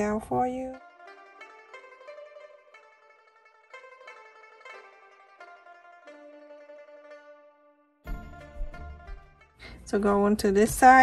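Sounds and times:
plucked string instrument music: 0.0s - 9.8s.

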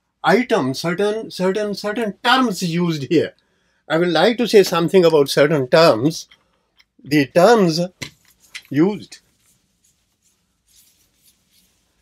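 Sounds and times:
duster rubbing on whiteboard: 9.2s - 12.0s.

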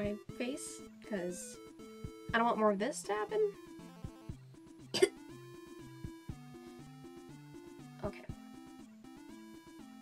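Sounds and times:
background music with bass line: 0.0s - 10.0s
woman coughing: 4.9s - 5.2s.

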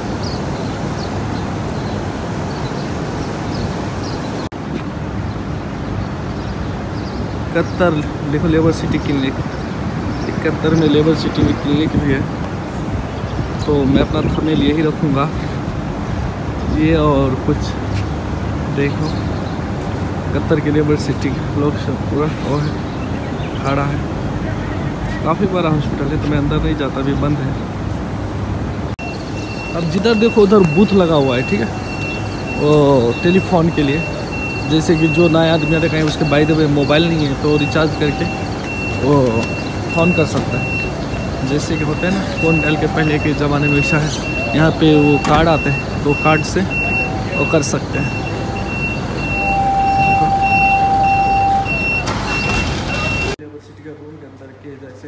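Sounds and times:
road traffic rumble: 0.0s - 55.0s
reversing alarm beeping: 29.0s - 53.4s
low steady tone: 48.1s - 52.0s.

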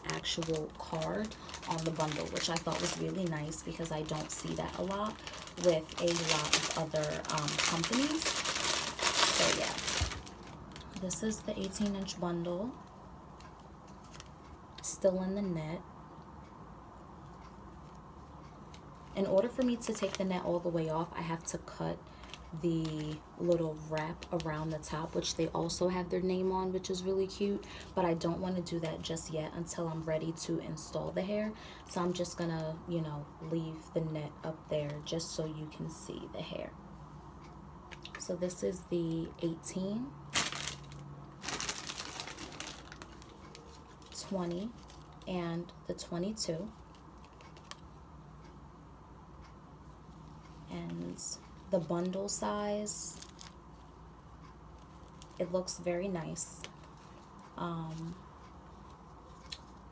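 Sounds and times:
packaging rustling: 0.0s - 12.1s, 40.3s - 45.2s, 46.9s - 47.8s.

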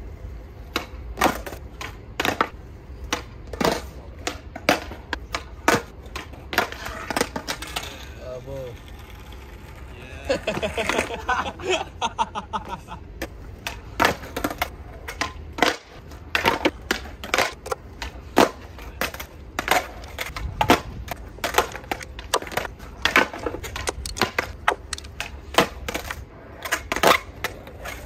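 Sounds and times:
skateboard wheels rolling: 0.0s - 28.0s
skateboards clacking on ground: 0.4s - 28.0s.

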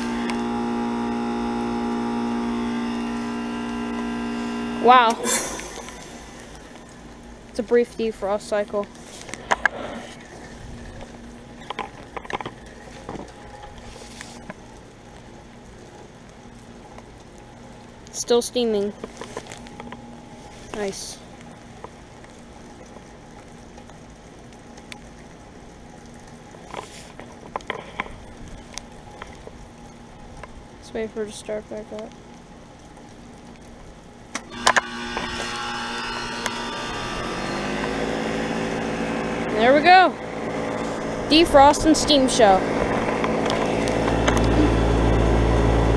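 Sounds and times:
heat pump compressor humming: 0.0s - 14.8s, 34.4s - 45.9s.

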